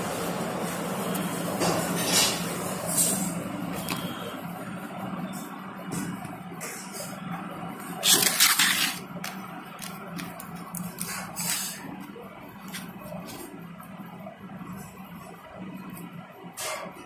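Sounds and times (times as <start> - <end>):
plastic wrapping crinkling: 8.0 - 13.4.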